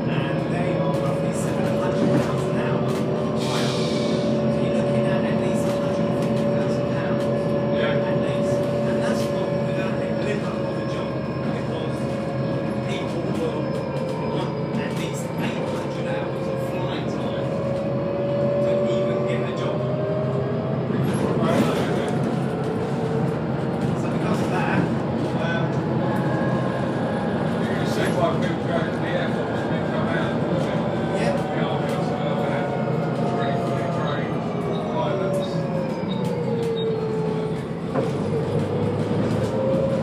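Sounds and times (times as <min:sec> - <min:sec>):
bus drivetrain whine: 0:00.0 - 0:40.0
road noise: 0:00.0 - 0:40.0.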